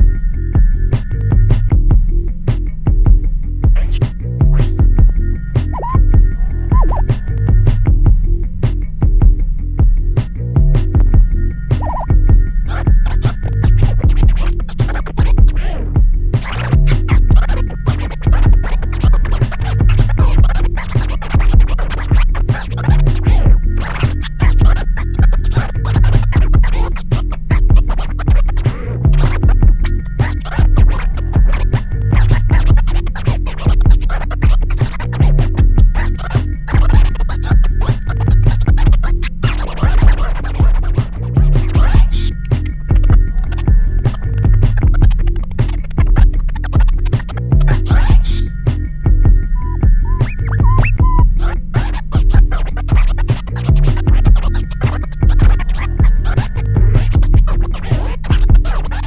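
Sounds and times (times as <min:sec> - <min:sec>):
hip hop beat: 0:00.0 - 0:59.0
turntable scratching: 0:03.6 - 0:08.0, 0:11.7 - 0:59.0.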